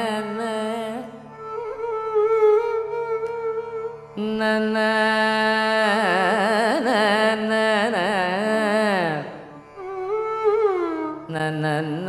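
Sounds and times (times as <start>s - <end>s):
violin accompaniment: 0.0s - 12.0s.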